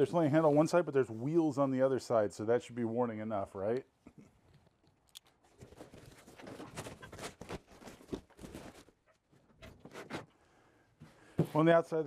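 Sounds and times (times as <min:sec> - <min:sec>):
plastic tool case being shifted: 0:05.6 - 0:09.0.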